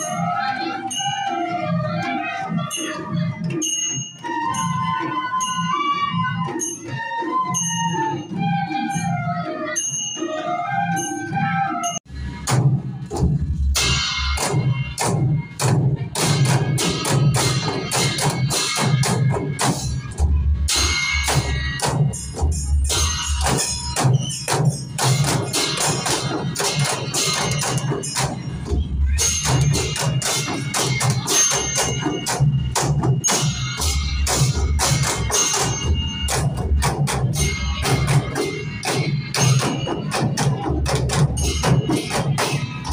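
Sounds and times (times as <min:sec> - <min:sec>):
bamboo flutes playing melody: 0:04.1 - 0:12.1
barrel drums beaten in fast rhythm: 0:12.4 - 0:42.9.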